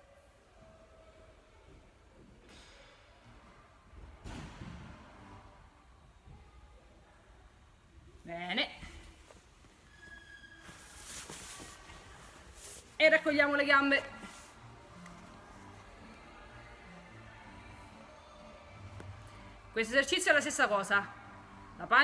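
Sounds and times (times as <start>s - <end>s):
faint cloth rustling: 8.8s - 16.2s.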